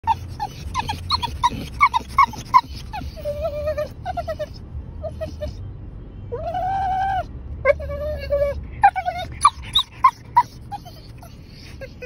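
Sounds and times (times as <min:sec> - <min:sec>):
dog whining and yelping: 0:00.0 - 0:05.6, 0:06.3 - 0:12.0.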